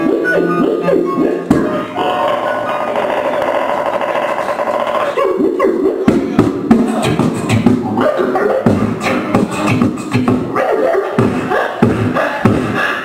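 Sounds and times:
beatboxing: 0:00.0 - 0:13.0.

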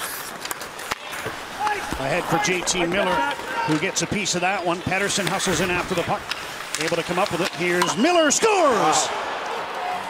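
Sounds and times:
crowd and skates hiss: 0:00.0 - 0:10.0
stick clicking on puck: 0:06.2 - 0:07.9.

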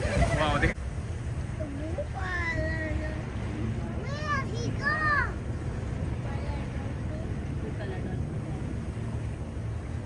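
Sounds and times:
boat motor rumble: 0:00.0 - 0:10.0
wind: 0:00.0 - 0:10.0.

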